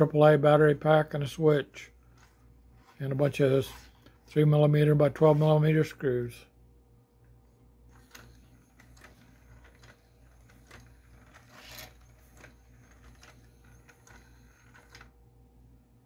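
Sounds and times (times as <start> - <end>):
toy scraping on table: 7.9 - 15.1
toy gears and feet clicking: 7.9 - 15.2.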